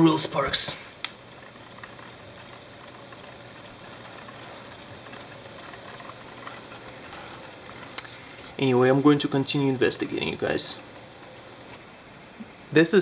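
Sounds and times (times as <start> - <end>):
electrostatic motor hiss: 0.0 - 11.9
faint ticks: 1.0 - 11.8.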